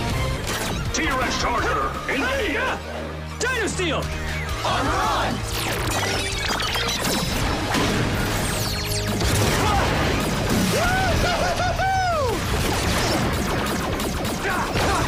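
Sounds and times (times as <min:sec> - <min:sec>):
background music: 0:00.0 - 0:15.0
explosions: 0:07.0 - 0:15.0.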